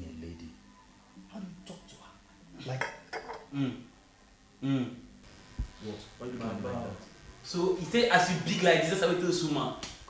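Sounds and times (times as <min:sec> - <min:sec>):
man speaking: 0:05.7 - 0:09.8.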